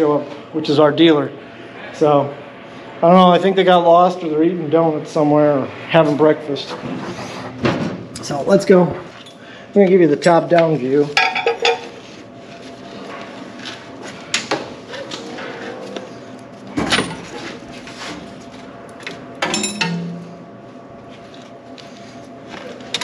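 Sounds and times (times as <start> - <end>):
wrench clinking on metal: 19.4 - 20.2.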